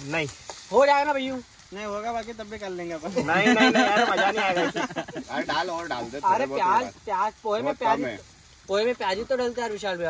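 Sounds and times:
men talking over one another: 0.0 - 10.0
vegetables frying in a pan: 0.0 - 10.0.

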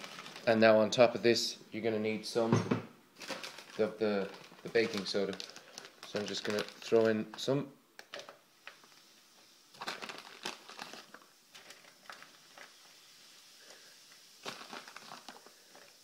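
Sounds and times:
foil crinkling and crackling: 0.0 - 0.7, 3.2 - 9.1, 9.7 - 16.0.

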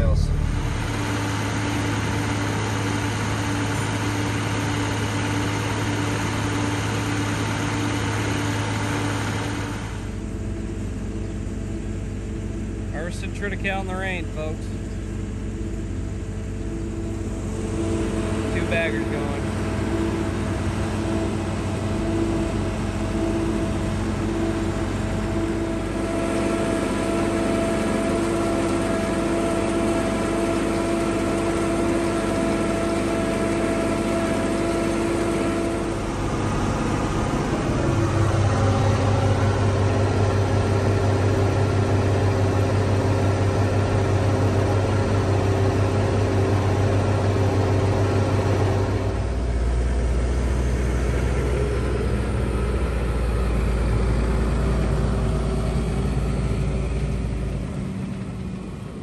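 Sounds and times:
tractor engines running under load: 0.0 - 59.0.

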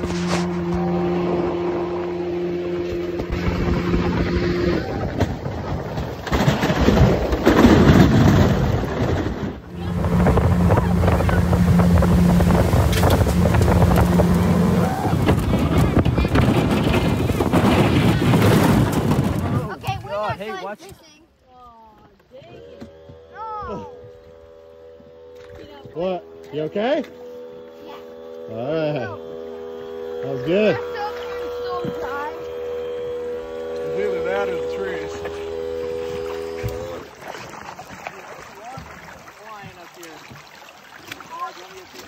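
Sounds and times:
rushing water and wind: 0.0 - 20.8, 36.0 - 42.0
boat motor humming: 0.0 - 42.0.

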